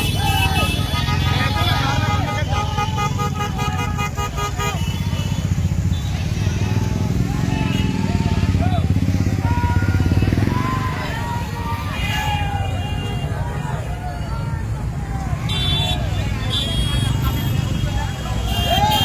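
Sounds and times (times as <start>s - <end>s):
motorcycle horns honking: 0.0s - 10.5s, 15.4s - 19.0s
motorcycle engines running: 0.0s - 19.0s
people shouting: 0.0s - 19.0s.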